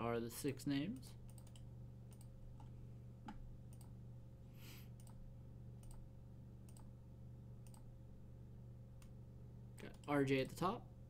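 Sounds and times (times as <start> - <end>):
faint electrical hum: 0.0 - 11.0
computer mouse clicks: 0.9 - 2.7, 3.3 - 4.0, 4.9 - 5.2, 5.8 - 6.0, 6.6 - 6.9, 7.6 - 7.9.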